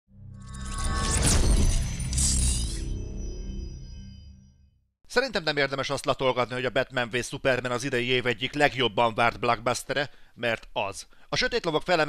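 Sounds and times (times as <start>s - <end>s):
cinematic logo music: 0.1s - 4.9s
whoosh and shatter effect: 0.2s - 4.6s
glassy shimmer: 0.3s - 4.5s.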